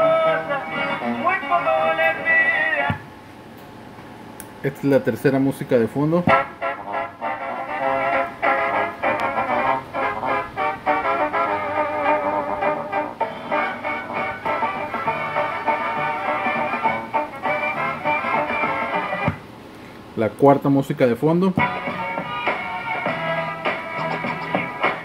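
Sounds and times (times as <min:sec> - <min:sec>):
thin background music tune: 0:06.3 - 0:19.4, 0:21.6 - 0:25.0.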